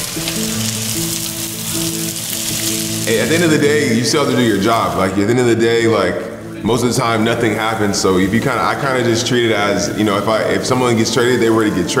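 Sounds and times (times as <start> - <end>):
food sizzling in a frying pan: 0.0 - 5.2
background music of slow held notes: 0.0 - 12.0.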